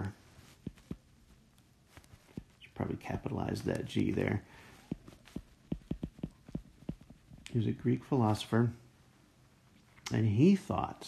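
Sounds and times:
pen tapping and stroking on paper: 0.0s - 1.1s, 1.9s - 7.5s.

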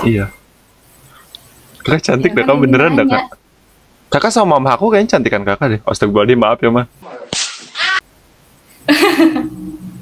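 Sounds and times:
voice: 0.0s - 0.4s, 1.8s - 3.4s, 4.1s - 7.2s
sharp whip-like crack: 7.0s - 8.0s.

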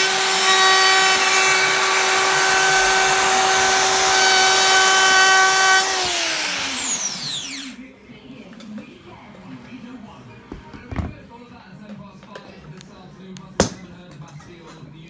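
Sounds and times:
router whining: 0.0s - 7.8s
motor spinning down: 1.2s - 7.8s.

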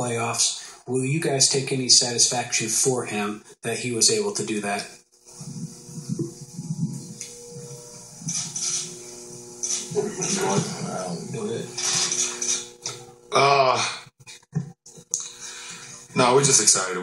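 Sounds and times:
steady hum: 0.0s - 17.0s
short hissing sounds: 4.8s - 13.1s
men murmuring: 9.7s - 16.7s.

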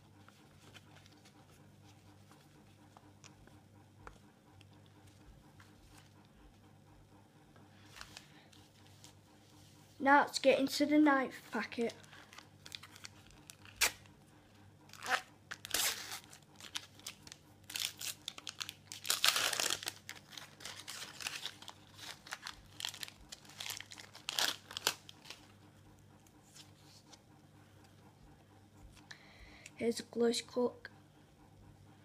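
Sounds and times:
stickers shuffled: 11.8s - 14.0s, 14.9s - 25.5s
wrapper tearing and crinkling: 12.0s - 14.1s, 14.9s - 25.5s.

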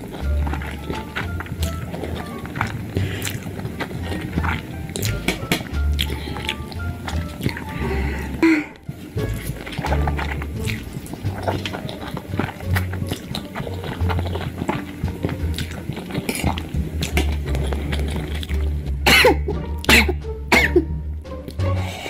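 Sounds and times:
strained vocal sounds: 0.0s - 18.9s
background music with bass: 0.0s - 22.0s
slurping and chewing noodles: 0.0s - 22.0s
person coughing: 8.4s - 8.8s, 19.1s - 20.9s.

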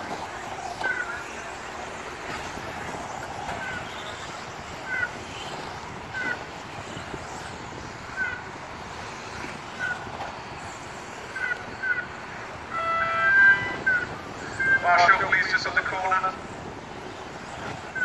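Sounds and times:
rc cars motors and tyres: 0.0s - 12.8s, 15.4s - 18.0s.

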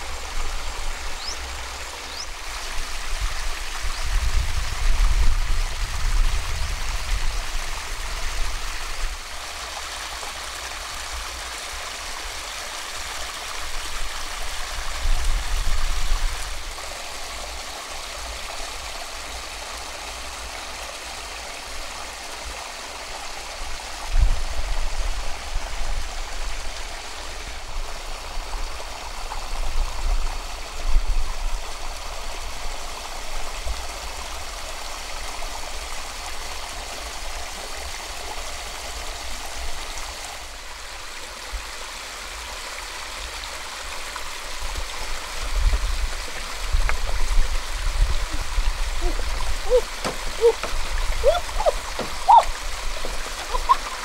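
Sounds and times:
water rushing into a pool: 0.0s - 54.0s.

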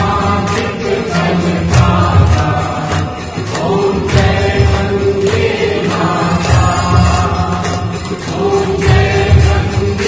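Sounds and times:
musical accompaniment: 0.0s - 10.0s
voices singing a hymn: 0.0s - 10.0s.

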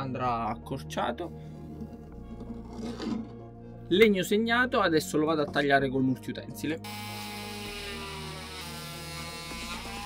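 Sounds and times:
multi-tool cutting plastic pipe: 6.9s - 10.0s.

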